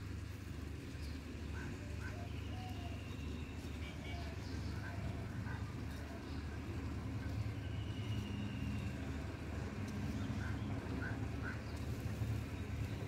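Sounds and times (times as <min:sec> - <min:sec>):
faint distant voices: 0:00.9 - 0:13.0.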